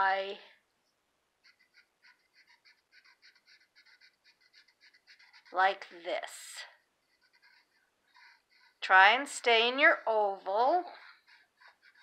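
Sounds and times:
marker squeaking on paper: 1.4s - 12.0s.

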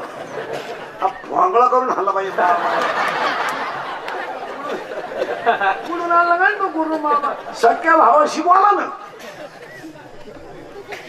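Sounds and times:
audience laughter: 0.0s - 7.8s, 9.0s - 11.0s
audience chatter: 0.0s - 11.0s
man speaking: 5.8s - 9.1s.

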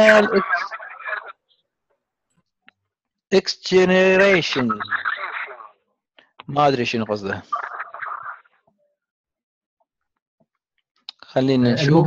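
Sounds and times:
voice holding a vowel: 0.0s - 0.6s.

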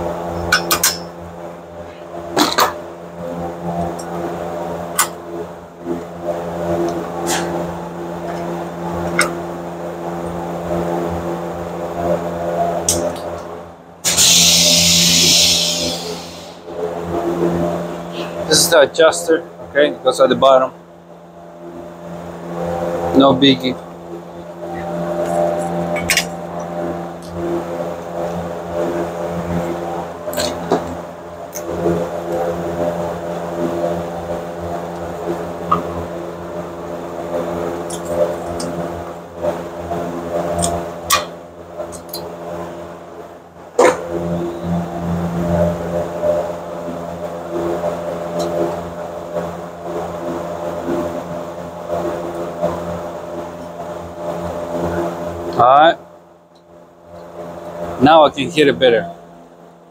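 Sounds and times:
steady mechanical hum: 0.0s - 59.9s.

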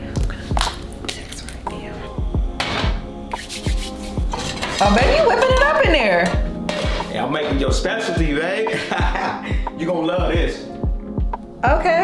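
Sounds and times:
background music with bass beat: 1.6s - 12.0s
pots and pans clinking: 4.3s - 7.8s.

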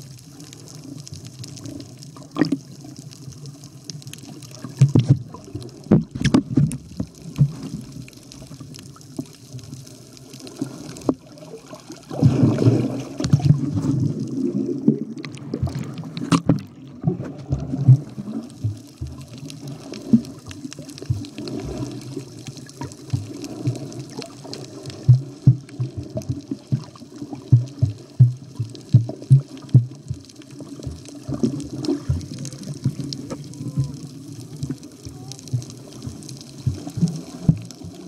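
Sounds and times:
water sloshing and bubbling: 0.0s - 38.0s.

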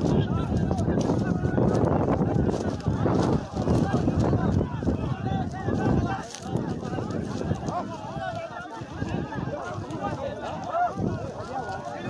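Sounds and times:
hurried footsteps: 0.0s - 12.0s
rustling through dry reeds: 0.0s - 12.0s.

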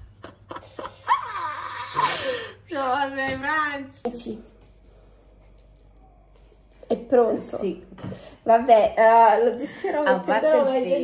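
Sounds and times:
faint low hum: 0.0s - 11.0s
woman speaking: 2.0s - 4.6s, 6.9s - 11.0s.

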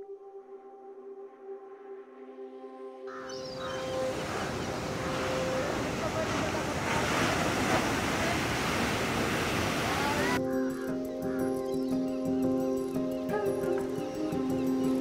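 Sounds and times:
soft music drone: 0.0s - 8.6s
waves breaking on beach: 3.4s - 10.4s.

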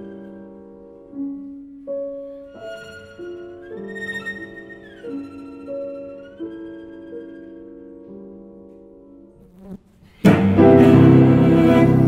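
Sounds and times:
cello playing softly: 0.0s - 12.0s.

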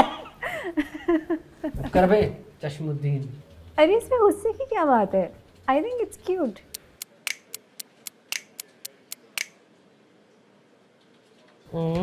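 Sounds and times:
laptop keys clicking: 6.6s - 9.6s.

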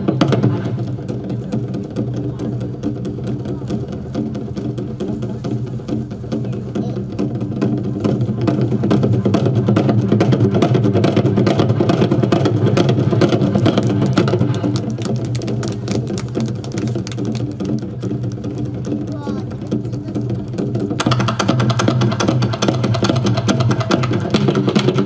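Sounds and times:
barrel drums rolling: 0.0s - 25.0s.

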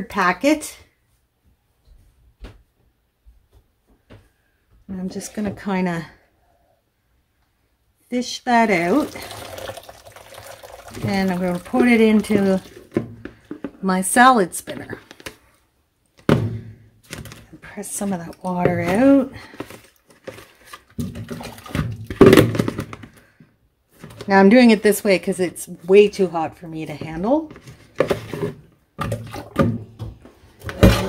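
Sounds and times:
water dripping and splashing: 8.5s - 13.2s.

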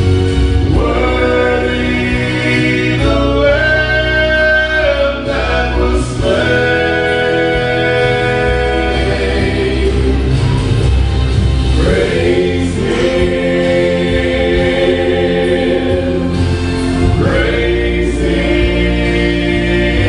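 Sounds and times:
male vocal trio singing gospel: 0.0s - 20.0s
recorded accompaniment with bass: 0.0s - 20.0s.

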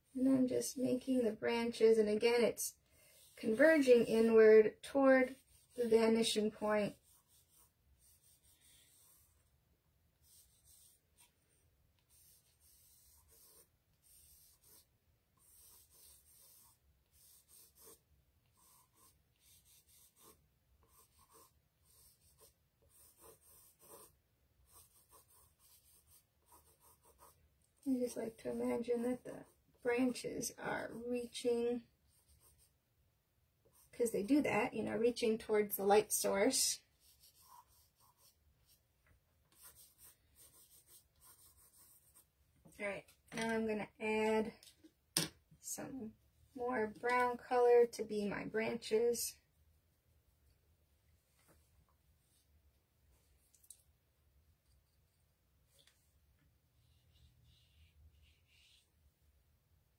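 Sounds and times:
pencil scratching on paper: 3.1s - 4.4s, 5.0s - 9.5s, 10.2s - 11.4s, 12.0s - 31.5s, 32.1s - 32.7s, 36.2s - 38.8s, 39.5s - 42.3s, 56.8s - 59.0s.

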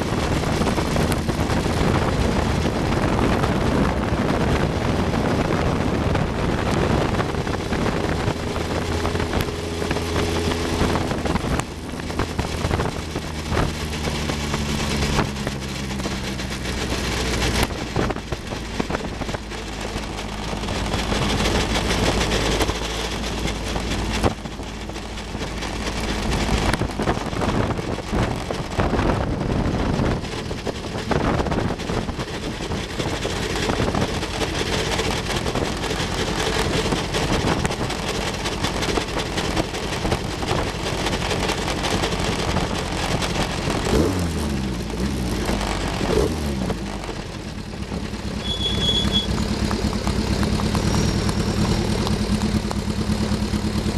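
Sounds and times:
car engine running at low revs: 0.0s - 53.9s.

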